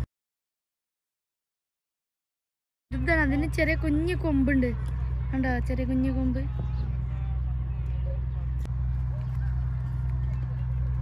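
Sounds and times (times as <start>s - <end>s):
low hum: 2.9s - 11.0s
faint voices: 3.0s - 11.0s.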